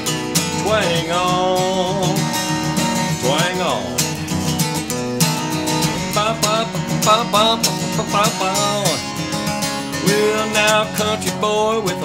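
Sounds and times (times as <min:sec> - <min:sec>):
acoustic guitar country strumming: 0:00.0 - 0:12.0.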